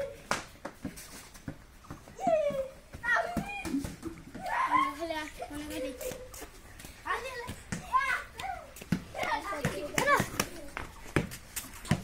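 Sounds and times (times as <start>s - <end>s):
children shouting: 4.4s - 5.2s.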